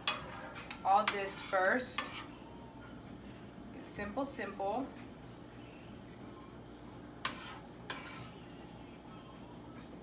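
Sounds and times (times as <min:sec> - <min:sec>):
utensil scraping frying pan: 0:00.0 - 0:02.3, 0:07.2 - 0:08.5.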